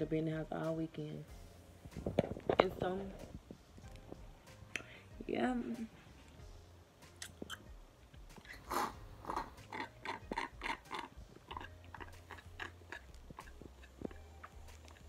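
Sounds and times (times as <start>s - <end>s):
sipping through a straw: 8.4s - 15.0s.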